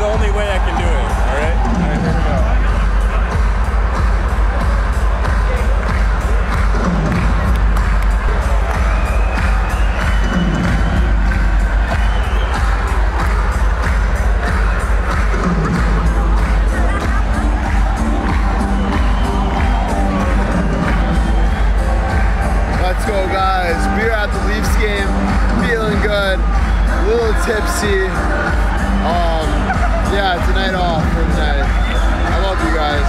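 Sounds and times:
fans cheering and shouting: 0.0s - 33.0s
music playing: 0.0s - 33.0s.

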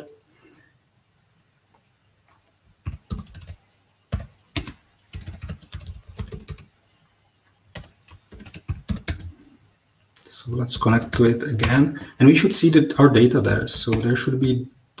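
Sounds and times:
computer keyboard typing: 2.8s - 6.7s, 7.7s - 9.4s, 10.2s - 12.0s, 13.5s - 15.0s.

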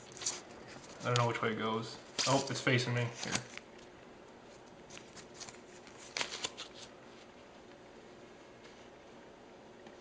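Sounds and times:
paper crinkling and sliding: 4.6s - 7.3s.

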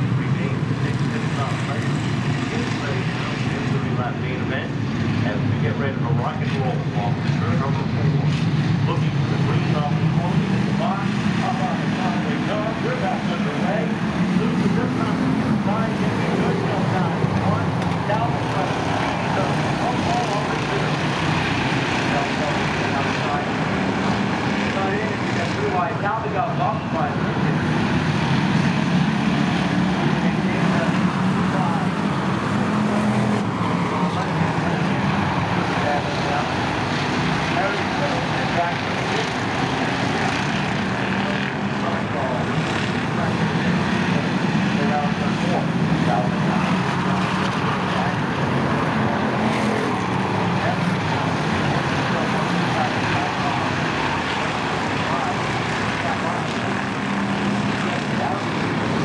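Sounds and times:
race car engines droning: 0.0s - 59.0s.

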